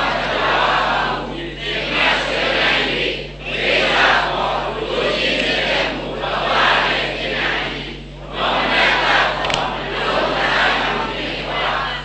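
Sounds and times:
crowd chanting in unison: 0:00.0 - 0:12.0.

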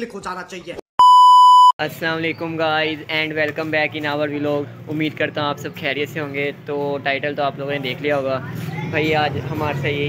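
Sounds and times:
censor bleep: 0:01.0 - 0:01.8.

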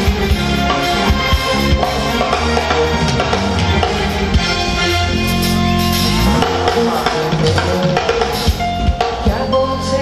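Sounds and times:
bass guitar: 0:00.0 - 0:10.0
drum kit steady beat: 0:00.0 - 0:10.0
electric guitar: 0:00.0 - 0:10.0.

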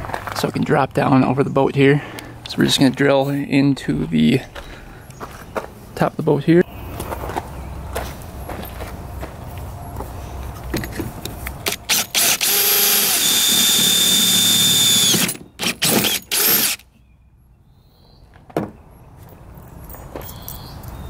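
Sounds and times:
cordless drill whining: 0:11.7 - 0:16.8.

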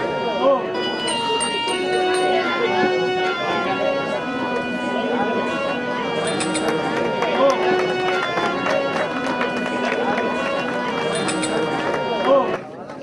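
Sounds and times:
held reedy tones: 0:00.0 - 0:12.4
drum strokes: 0:06.2 - 0:07.0.

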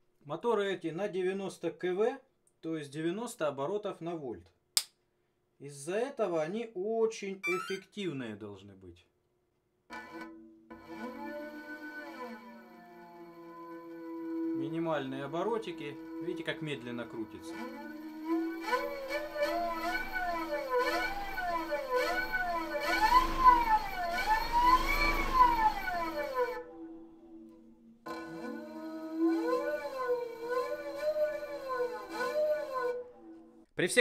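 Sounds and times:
electric motor whine: 0:18.7 - 0:26.6.

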